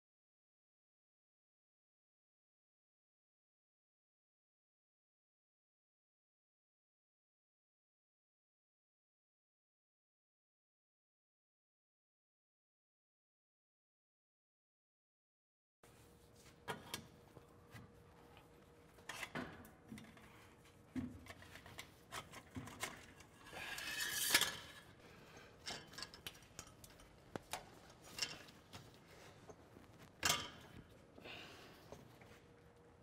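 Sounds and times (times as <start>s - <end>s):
metal scrape: 21.3s - 25.0s.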